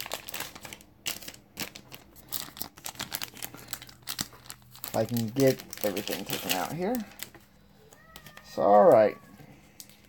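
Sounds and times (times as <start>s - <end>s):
packaging crinkling and tearing: 0.0s - 10.0s.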